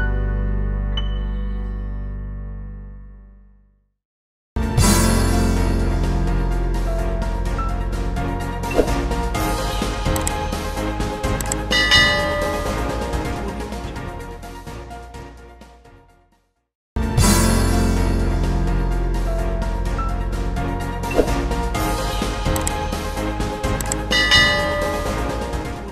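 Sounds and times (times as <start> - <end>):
background music: 0.0 - 3.2, 4.6 - 25.9
quick clicks: 10.0 - 10.5, 11.3 - 11.7, 22.4 - 22.9, 23.7 - 24.1
short clicks: 11.3 - 11.7, 23.7 - 24.1
bright bell chime: 11.6 - 13.1, 24.0 - 25.4.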